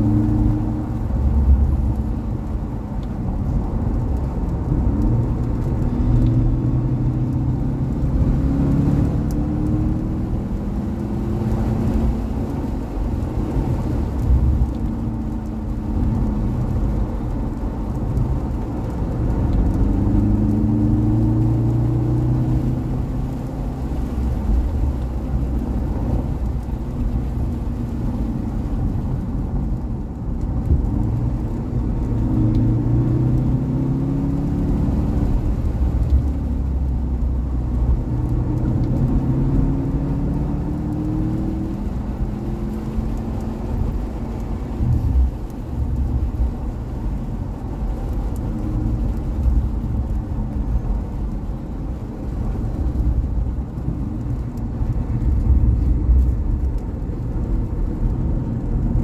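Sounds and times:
sports car engine accelerating: 0.0s - 59.0s.

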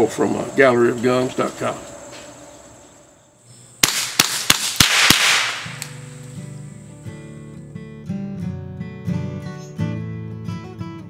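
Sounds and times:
rifle shots: 3.8s - 6.2s
acoustic guitar music: 5.6s - 11.0s.

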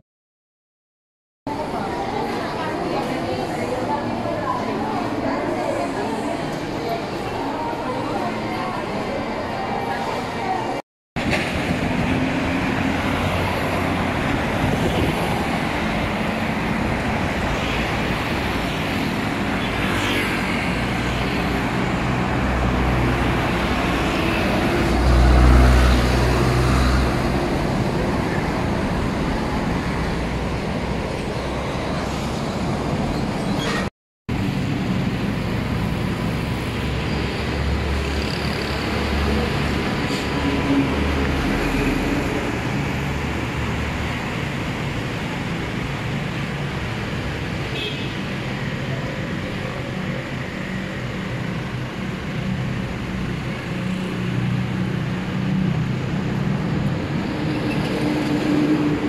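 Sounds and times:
road traffic rumble: 1.5s - 59.0s.

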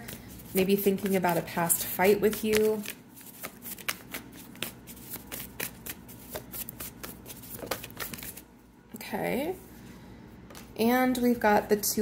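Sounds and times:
cards being shuffled: 0.0s - 8.4s.

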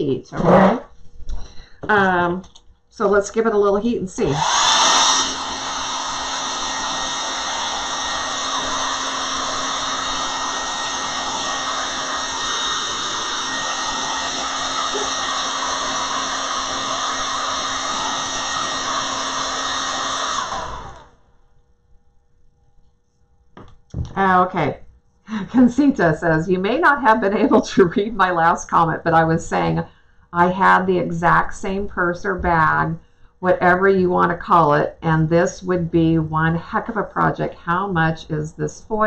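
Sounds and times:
hair dryer blowing: 4.2s - 21.3s.

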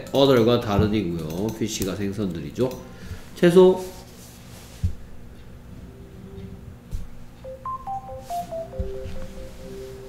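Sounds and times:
electronic beeping melody: 7.4s - 10.0s
low held tone: 7.4s - 10.0s.

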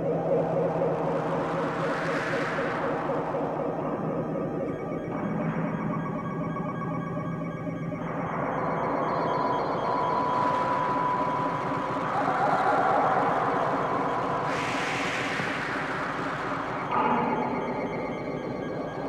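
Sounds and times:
noisy synthesizer drone: 0.0s - 19.0s
hissing noise swell: 9.8s - 18.1s.

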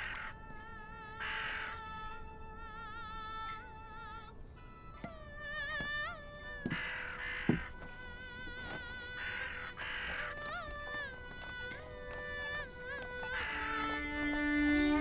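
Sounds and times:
distant opera singing: 0.0s - 15.0s.

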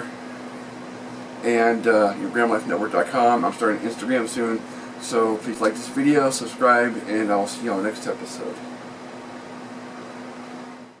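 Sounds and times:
room hum with hiss: 0.0s - 11.0s.

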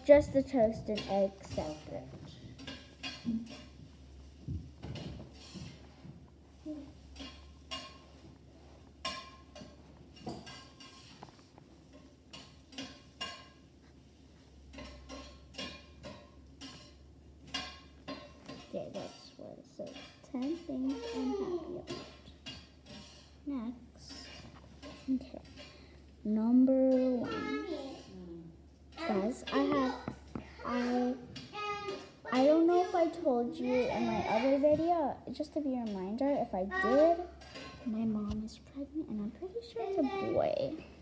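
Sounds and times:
dishes and cutlery clinking: 0.8s - 28.2s, 28.8s - 38.3s.

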